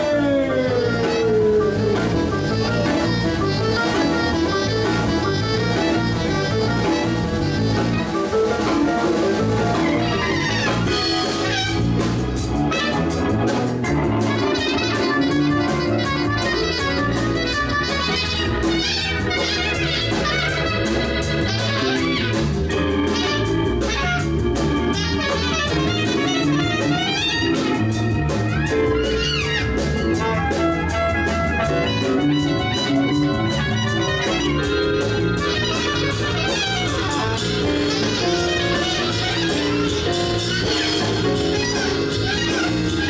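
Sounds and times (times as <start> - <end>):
bass: 0.0 - 43.0
clarinet playing wavering lead: 0.0 - 43.0
drum kit with cymbal hits: 0.0 - 43.0
electric guitar: 0.0 - 43.0
keyboard: 0.0 - 43.0.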